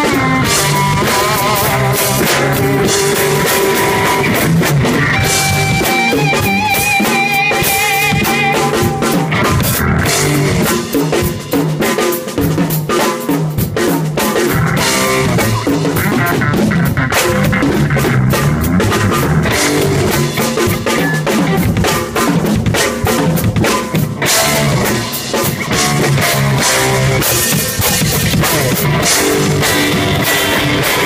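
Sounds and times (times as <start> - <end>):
drum kit playing: 0.0 - 31.0.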